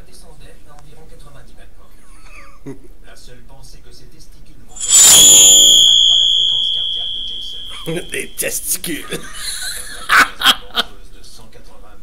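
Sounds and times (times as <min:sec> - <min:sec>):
high-pitched ringing sound effect: 0:04.8 - 0:09.1.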